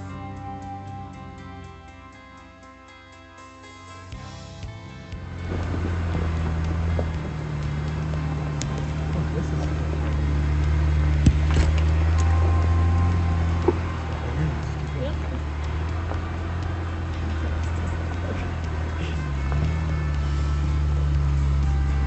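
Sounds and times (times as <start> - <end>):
background music: 0.0 - 22.0
off-road vehicle engine running: 0.0 - 22.0.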